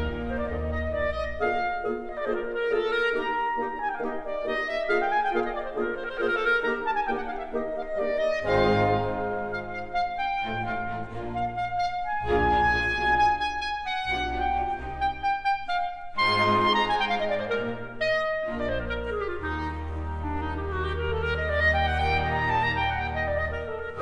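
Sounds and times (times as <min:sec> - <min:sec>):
soft string accompaniment: 0:00.0 - 0:24.0
solo clarinet runs: 0:00.0 - 0:24.0.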